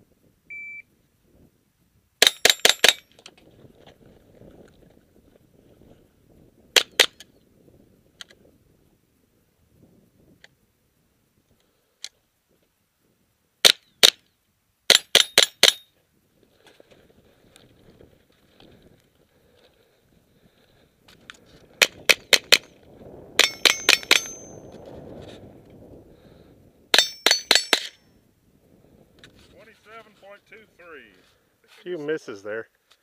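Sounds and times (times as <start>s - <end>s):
high ringing of steel targets: 2.2s - 3.1s, 23.4s - 24.7s, 26.9s - 28.1s.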